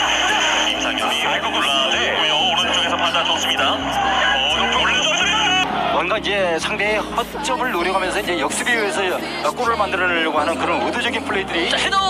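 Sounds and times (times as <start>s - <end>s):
background music: 0.0s - 12.0s
men commentating on football: 0.0s - 12.0s.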